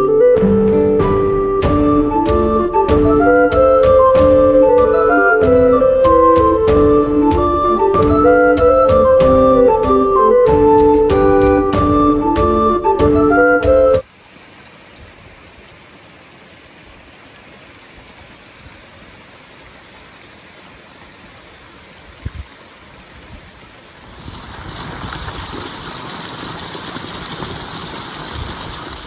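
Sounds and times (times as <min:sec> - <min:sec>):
creek cascading over rocks: 0:14.0 - 0:29.0.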